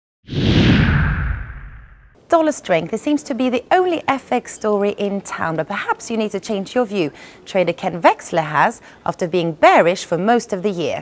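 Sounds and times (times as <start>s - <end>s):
whoosh with deep rumble: 0.3s - 2.2s.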